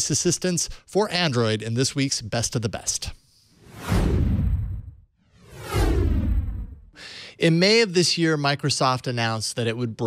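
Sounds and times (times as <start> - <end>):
whoosh sound effects: 3.5 - 6.9
deep rumble: 3.7 - 6.9.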